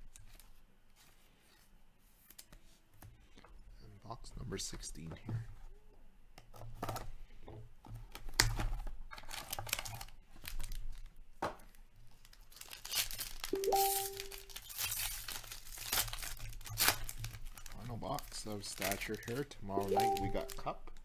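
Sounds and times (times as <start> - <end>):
foil packs crinkling and tearing: 8.2 - 11.2, 12.0 - 20.7.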